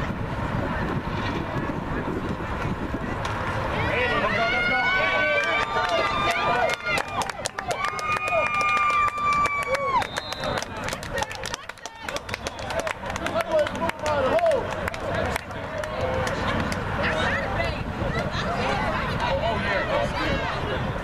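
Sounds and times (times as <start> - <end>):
spectators screaming and cheering: 3.2 - 21.0
sharp claps: 5.4 - 16.8.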